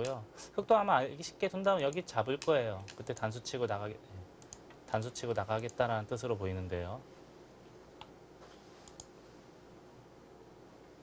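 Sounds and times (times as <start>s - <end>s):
faint mouse clicks: 4.4s - 5.8s, 8.8s - 9.2s.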